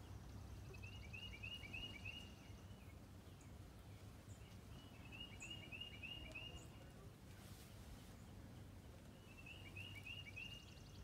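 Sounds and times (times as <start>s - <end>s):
songbird whistling: 0.8s - 2.5s, 4.8s - 6.6s, 9.2s - 11.0s.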